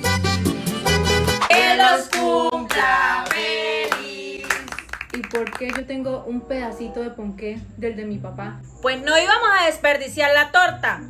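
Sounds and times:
people singing a birthday song: 1.4 - 4.9
hand clapping: 1.5 - 5.8.

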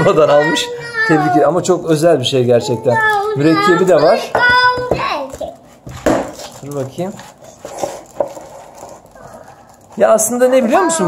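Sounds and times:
plastic wrapping being handled: 5.1 - 11.0.

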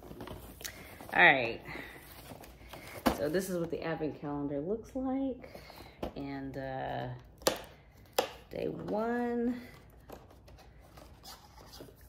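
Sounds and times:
cardboard rustling: 0.0 - 3.8, 8.9 - 12.0.

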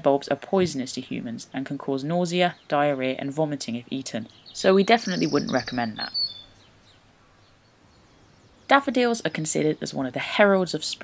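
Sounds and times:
faint outdoor background: 0.0 - 11.0
thin high bird calls: 4.3 - 8.8.

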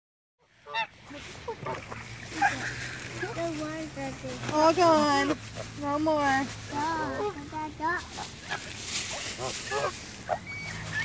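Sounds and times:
geese honking: 0.4 - 3.4, 8.1 - 11.0.

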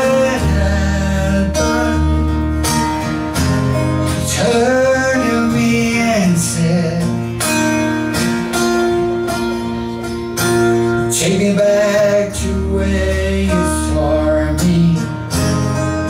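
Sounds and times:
man singing: 0.0 - 2.4, 4.0 - 7.6, 11.0 - 16.0
acoustic guitar strumming: 0.0 - 16.0.

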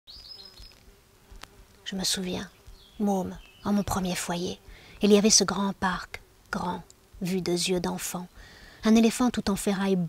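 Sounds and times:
flying insect buzzing: 0.1 - 10.0.

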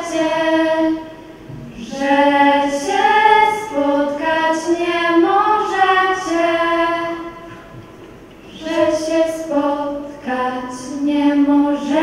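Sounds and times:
young women singing a cappella: 0.0 - 12.0.

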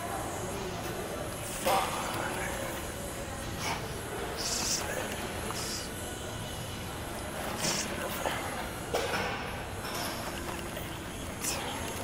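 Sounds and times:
gym background noise: 0.0 - 12.0.

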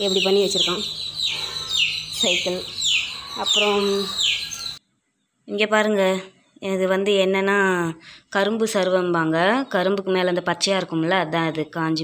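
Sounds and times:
bird chirping: 0.0 - 5.8, 8.1 - 12.0.

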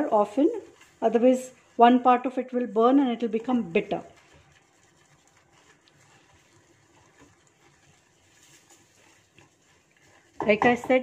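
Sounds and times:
whisk stirring in a pan: 0.0 - 11.0.

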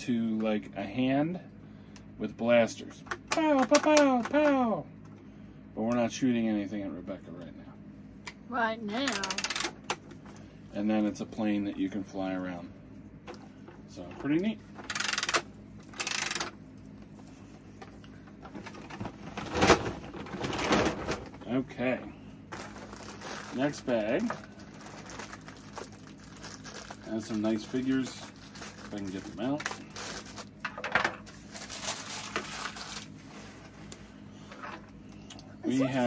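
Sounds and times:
toy mechanism clicking rattle: 9.0 - 9.7, 14.9 - 16.5
plastic toys clicking: 14.9 - 15.4
plastic bag crinkling: 22.5 - 30.6, 31.2 - 33.2.

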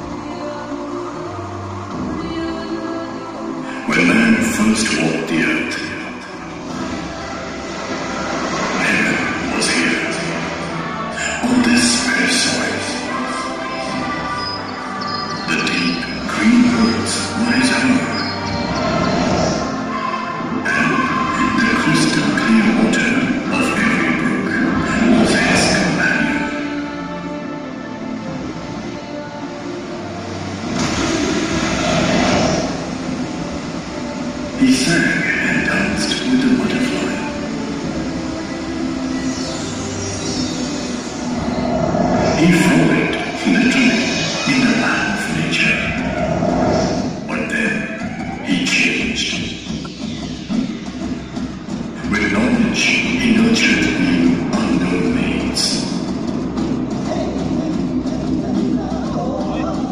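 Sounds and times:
rushing engine-like effect over loudspeakers: 3.7 - 14.0, 15.5 - 26.8, 29.7 - 59.9.

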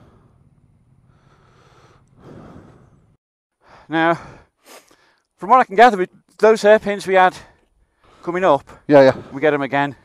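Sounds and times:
soft breath close to microphone: 0.0 - 3.2.

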